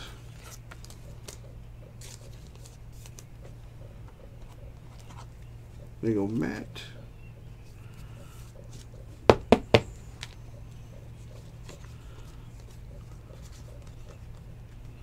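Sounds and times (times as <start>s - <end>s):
steady low hum: 0.0s - 15.0s
cards being flipped through: 0.3s - 3.3s.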